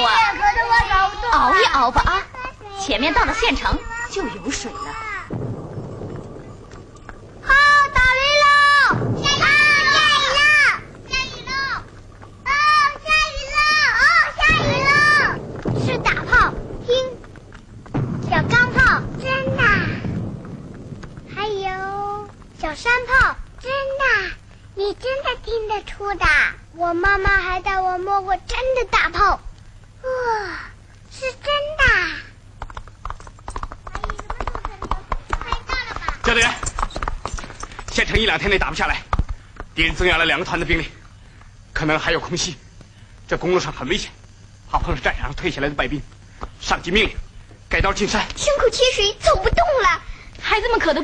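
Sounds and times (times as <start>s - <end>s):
children's high-pitched voices: 0.0s - 5.4s, 7.4s - 17.4s, 18.2s - 20.2s, 21.3s - 32.4s, 33.9s - 36.2s, 48.4s - 51.0s
horse hooves clip-clopping: 0.0s - 26.4s, 32.4s - 42.9s
falling call: 3.0s - 17.7s.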